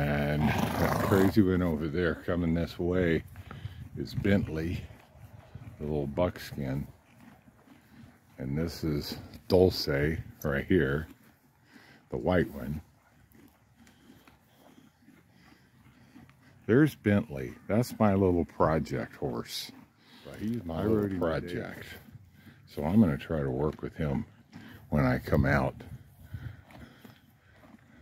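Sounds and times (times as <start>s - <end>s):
horse sounds: 0.0s - 28.0s.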